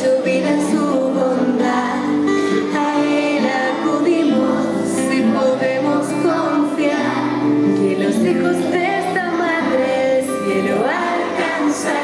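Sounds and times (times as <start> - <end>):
children and women singing a hymn: 0.0 - 12.0.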